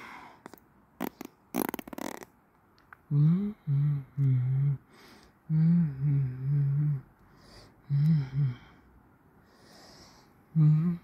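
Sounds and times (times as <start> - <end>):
man humming low notes: 3.1 - 4.8, 5.5 - 7.1, 7.9 - 8.7, 10.5 - 11.0.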